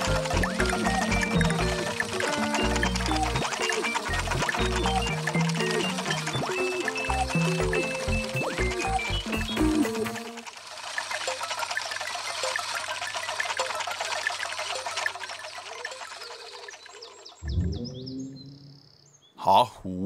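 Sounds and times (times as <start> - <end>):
birds chirping in chorus: 16.3 - 19.4.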